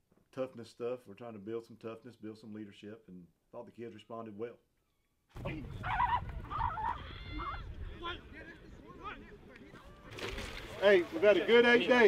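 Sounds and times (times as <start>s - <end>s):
players shouting: 5.4s - 10.1s.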